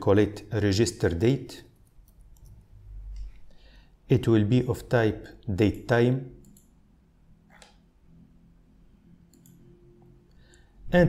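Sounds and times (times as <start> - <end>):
man speaking: 0.0 - 1.7, 4.1 - 6.4
low steady hum: 0.0 - 11.0
computer mouse clicks: 1.8 - 3.4, 6.4 - 6.8, 9.3 - 9.6.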